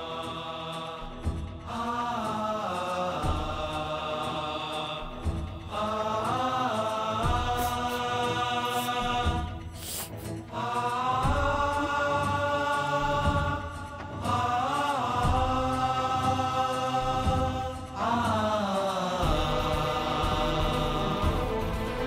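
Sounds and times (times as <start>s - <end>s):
chant-like voices on long notes: 0.0s - 22.0s
low musical accompaniment: 0.0s - 22.0s.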